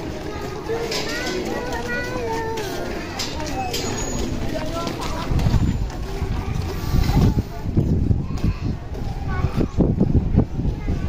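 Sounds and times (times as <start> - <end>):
faint children's voices: 0.0 - 11.0
wind buffeting microphone: 4.3 - 11.0.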